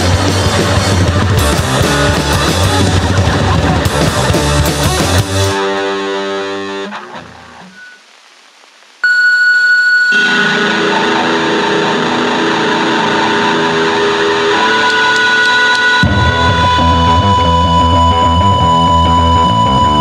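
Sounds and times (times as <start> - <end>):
punk band playing: 0.0 - 7.8, 10.2 - 20.0
distorted electric guitar high note: 0.0 - 8.2, 9.0 - 20.0.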